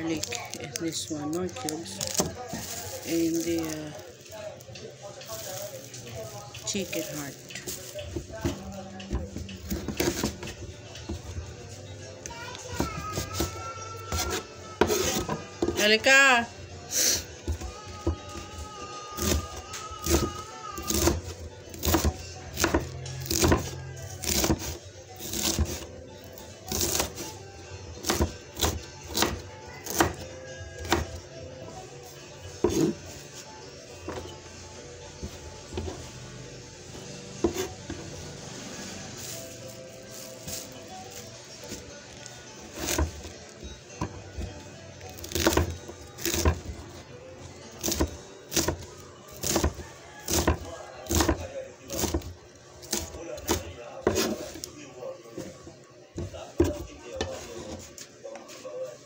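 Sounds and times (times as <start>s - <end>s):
knife chopping vegetables: 6.9s - 11.4s, 12.7s - 15.9s, 17.4s - 25.9s, 26.7s - 27.4s, 28.0s - 31.2s, 32.5s - 33.0s, 37.4s - 38.2s, 42.6s - 44.5s, 45.1s - 47.0s, 47.7s - 54.7s.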